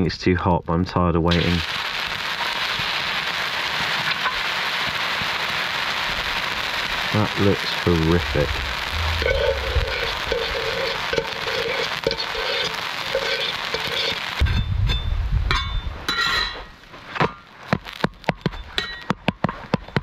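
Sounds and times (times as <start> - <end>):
batter sizzling on griddle: 1.3 - 15.0
metal spatula scraping steel plate: 9.9 - 14.2.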